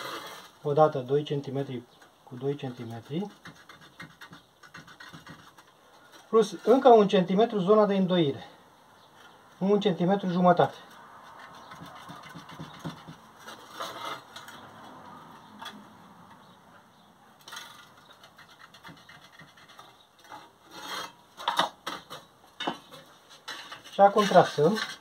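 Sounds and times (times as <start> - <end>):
pencil scratching on sheet metal: 0.0 - 0.5, 2.6 - 5.7, 11.2 - 14.5, 17.5 - 21.2.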